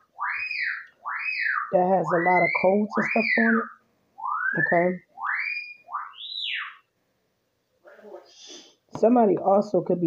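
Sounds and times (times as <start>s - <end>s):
wolf whistle: 0.2s - 6.8s.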